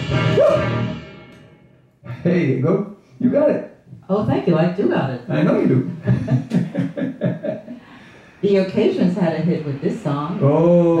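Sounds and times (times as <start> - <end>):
man talking into microphone: 5.3 - 6.0
man chuckling: 6.0 - 7.8.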